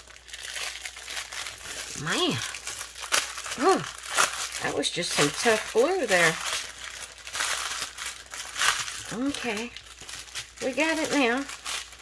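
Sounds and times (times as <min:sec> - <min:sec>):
plastic wrapping crinkling: 0:00.0 - 0:12.0.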